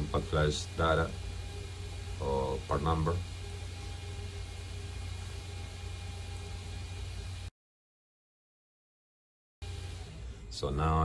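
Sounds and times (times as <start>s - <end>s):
computer fans humming: 0.0s - 7.5s, 9.6s - 11.0s.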